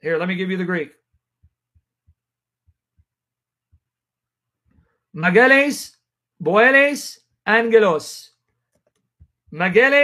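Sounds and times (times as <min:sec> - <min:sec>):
faint dull low thumps: 0:01.1 - 0:04.0.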